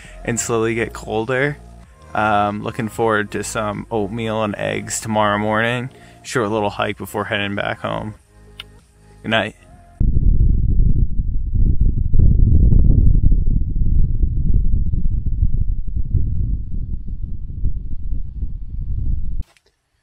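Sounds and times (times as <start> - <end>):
wind buffeting microphone: 10.0 - 19.4.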